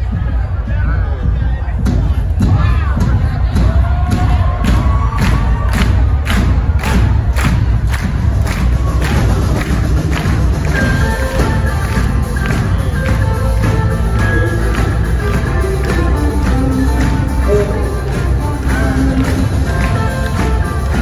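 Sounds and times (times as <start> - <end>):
crowd noise: 0.0 - 21.0.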